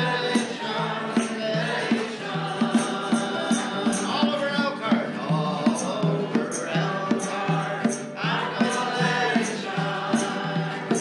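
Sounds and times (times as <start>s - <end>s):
congregation singing a hymn: 0.0s - 11.0s
man singing: 0.0s - 11.0s.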